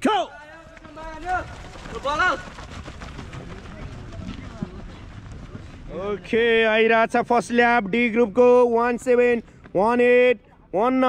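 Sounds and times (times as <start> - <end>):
runners' footsteps on dirt: 0.3 - 8.3, 9.1 - 9.8.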